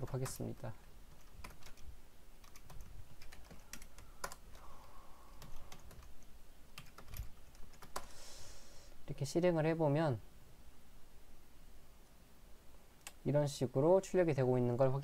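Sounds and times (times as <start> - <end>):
typing on computer keyboard: 1.1 - 4.6, 5.3 - 8.1.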